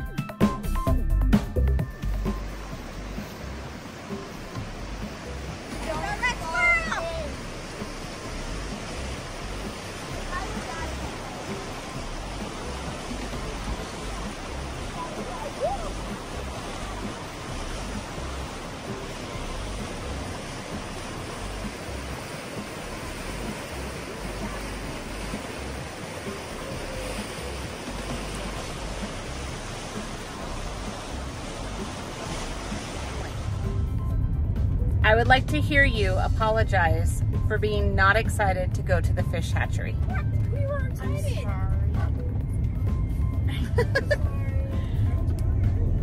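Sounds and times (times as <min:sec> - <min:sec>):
river rushing through rapids: 0:02.4 - 0:33.7.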